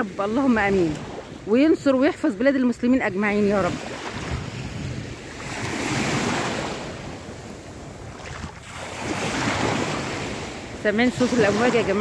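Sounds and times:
sea waves washing ashore: 0.0s - 12.0s
wind buffeting microphone: 0.0s - 12.0s.

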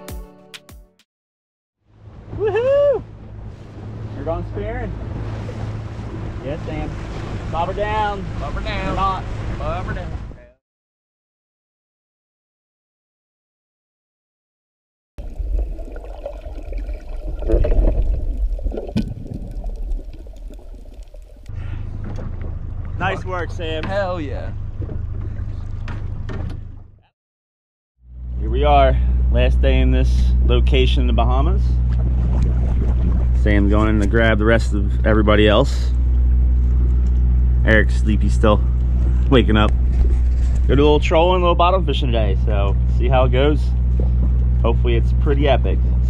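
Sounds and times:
boat engine running: 1.8s - 10.6s, 15.2s - 27.1s, 28.0s - 46.0s.

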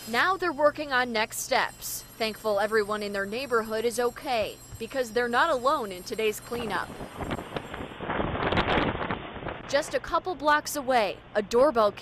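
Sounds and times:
storm wind buffeting microphone: 6.2s - 10.3s.

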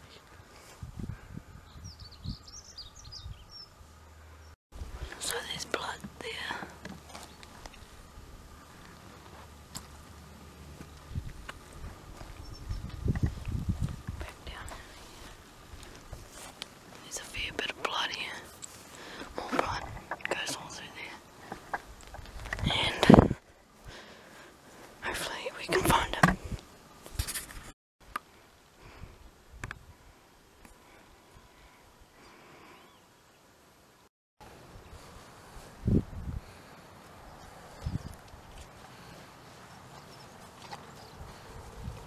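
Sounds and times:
small bird chirping: 1.6s - 3.8s, 12.4s - 13.5s, 37.3s - 38.2s
close whispering: 5.1s - 6.9s, 14.2s - 15.3s, 17.0s - 18.6s, 19.2s - 21.7s, 22.6s - 23.4s, 25.0s - 26.4s
rustles and snaps in grass: 13.0s - 17.0s
rustling and handling noise: 13.2s - 23.0s, 25.9s - 27.8s.

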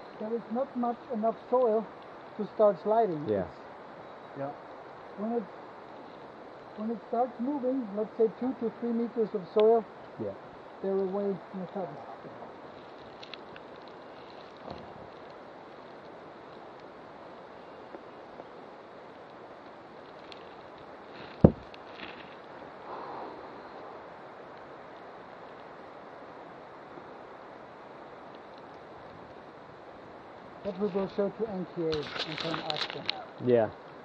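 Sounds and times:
wind hissing on microphone: 0.0s - 34.0s
sharp knock on camera: 21.4s - 21.6s.

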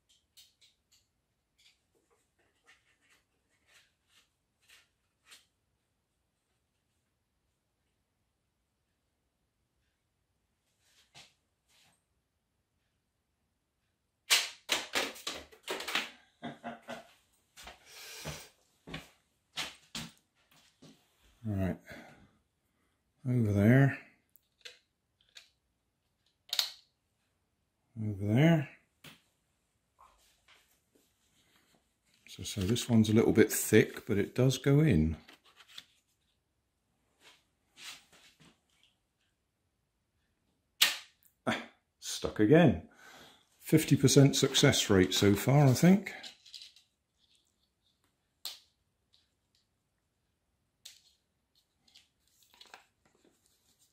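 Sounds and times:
rubber-band launcher snap: 14.3s - 15.0s, 40.8s - 41.2s
paper rustling: 35.2s - 36.3s, 51.0s - 53.9s
rubber band snap: 40.8s - 41.2s.

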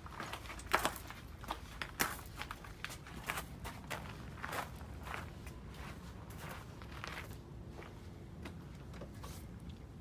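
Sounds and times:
scuffing footsteps: 0.0s - 8.6s.

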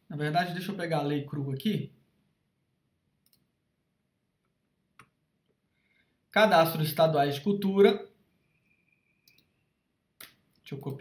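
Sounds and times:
computer mouse clicks: 3.2s - 3.5s, 9.2s - 9.5s.

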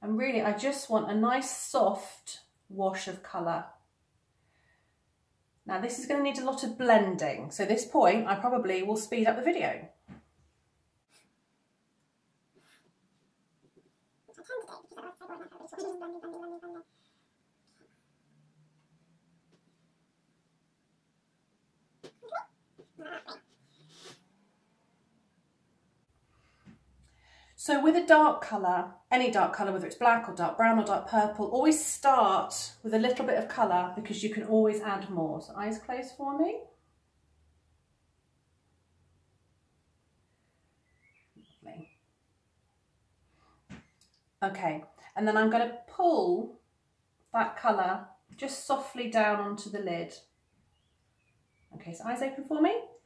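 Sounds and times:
person holding a vocal note: 14.4s - 16.8s.

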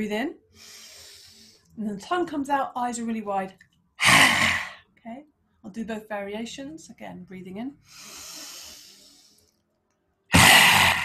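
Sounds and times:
woman inhaling: 0.5s - 1.7s, 7.8s - 9.5s.

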